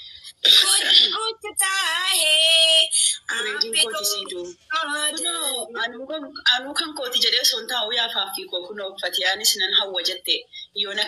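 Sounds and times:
woman making wordless vocal sounds: 0.3s - 6.5s.

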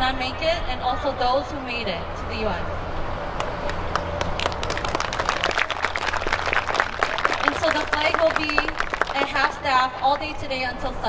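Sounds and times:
crowd clapping: 3.4s - 10.3s.

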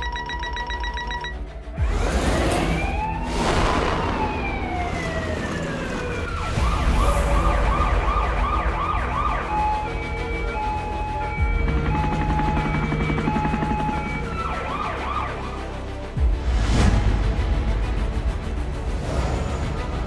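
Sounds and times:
emergency vehicle siren: 0.0s - 16.2s.

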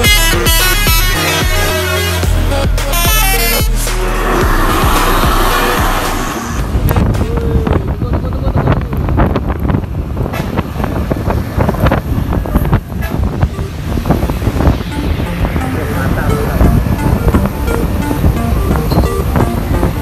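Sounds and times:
low engine and road rumble: 0.0s - 20.0s
road noise hiss: 3.5s - 20.0s
wind buffeting microphone: 4.3s - 20.0s.

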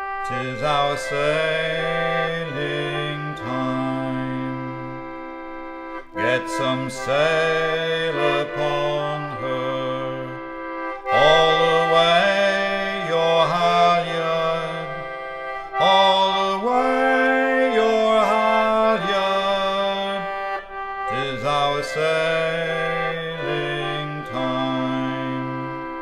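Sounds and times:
concertina playing chords: 0.0s - 26.0s.

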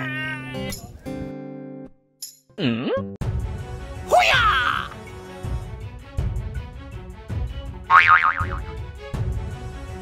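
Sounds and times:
background music with steady beat: 4.9s - 10.0s
comic boing: 7.9s - 8.6s.

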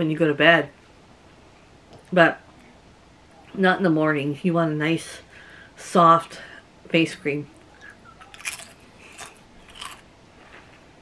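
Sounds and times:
chips being crunched and chewed: 8.2s - 10.1s.

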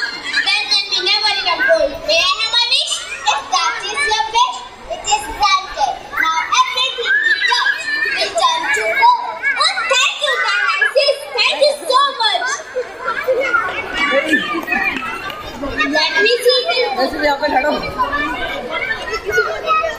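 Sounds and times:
children speaking: 0.0s - 19.9s.

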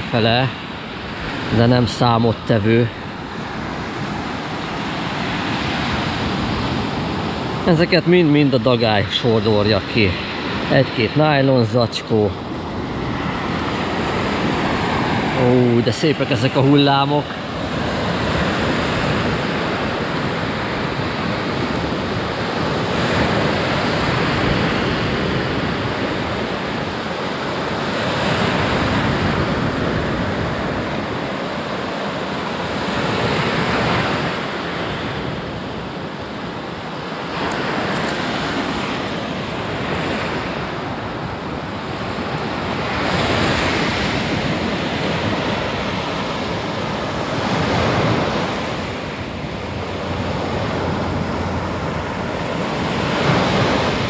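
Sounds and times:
waves washing up a beach: 0.0s - 54.0s.

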